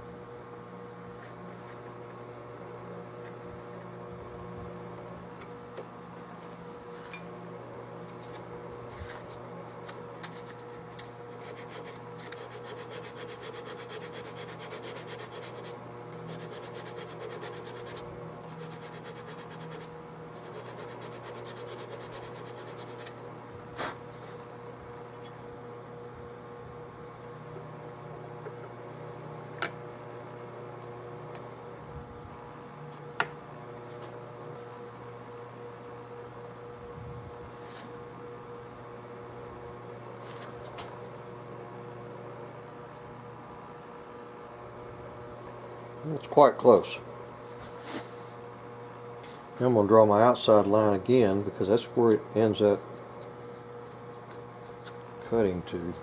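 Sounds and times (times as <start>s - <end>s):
steady shop hum: 0.0s - 56.0s
hand tool scraping wood: 10.2s - 23.2s.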